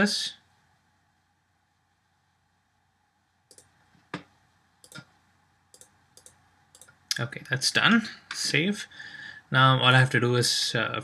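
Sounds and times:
faint computer mouse clicks: 0:03.5 - 0:05.1, 0:05.7 - 0:07.0.

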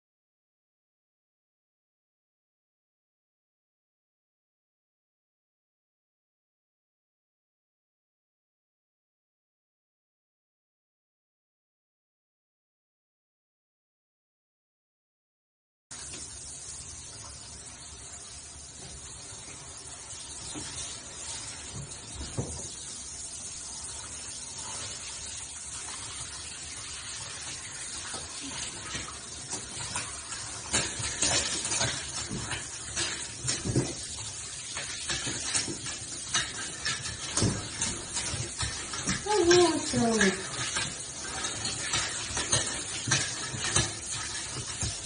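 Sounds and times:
shower spray hissing: 0:15.9 - 0:45.0
water splashing: 0:18.9 - 0:45.0.

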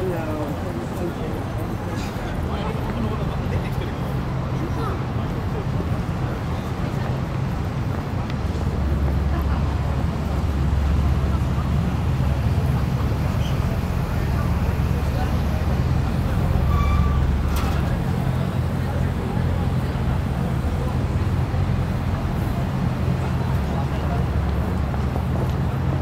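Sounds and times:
indistinct voices of passers-by: 0:00.0 - 0:26.0
road traffic rumble: 0:00.0 - 0:26.0.

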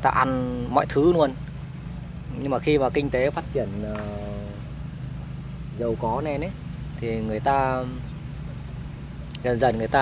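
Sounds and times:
steady low rumble: 0:00.0 - 0:10.0
man speaking: 0:02.3 - 0:04.7, 0:05.8 - 0:08.0, 0:09.4 - 0:10.0.

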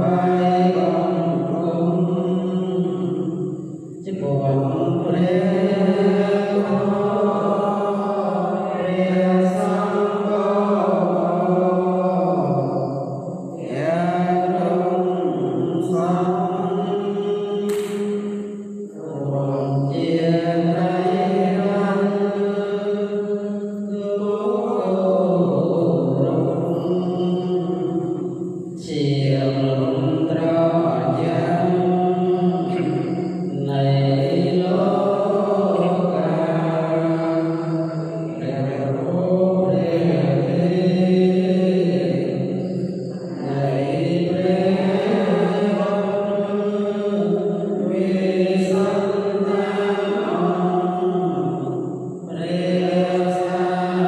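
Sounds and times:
men chanting together: 0:00.0 - 0:54.0.

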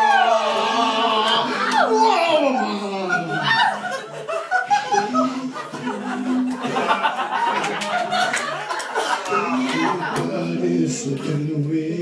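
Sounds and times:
person chuckling: 0:02.4 - 0:10.4.

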